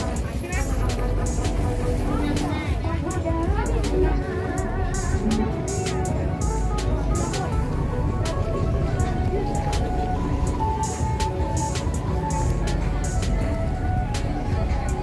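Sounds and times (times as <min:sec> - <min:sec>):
steady low rumble: 0:00.0 - 0:10.8
music playing: 0:00.0 - 0:15.0
voices: 0:00.0 - 0:15.0.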